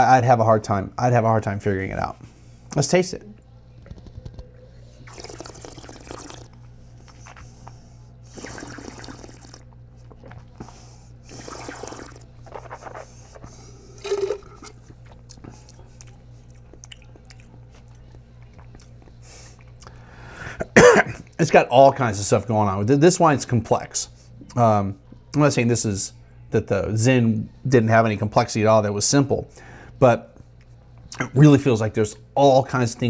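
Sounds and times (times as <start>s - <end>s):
person slurping wine: 5.0s - 7.5s, 8.3s - 14.9s
spitting into metal bucket: 14.0s - 14.8s
person coughing: 20.5s - 21.3s.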